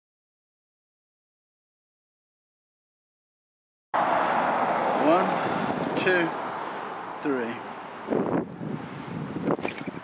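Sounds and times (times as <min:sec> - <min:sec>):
wind noise on microphone: 0:05.3 - 0:06.6, 0:08.0 - 0:10.0.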